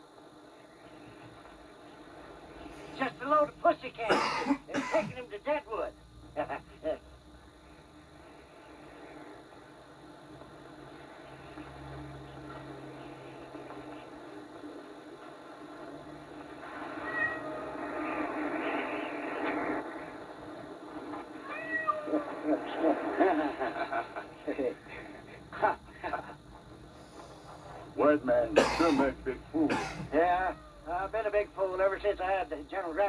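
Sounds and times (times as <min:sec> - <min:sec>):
cats meowing: 0:16.6 - 0:18.8, 0:21.1 - 0:22.8, 0:30.1 - 0:30.9.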